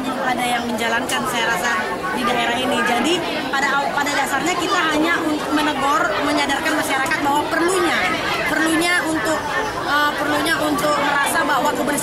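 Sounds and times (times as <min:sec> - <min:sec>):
woman speaking: 0:00.0 - 0:12.0.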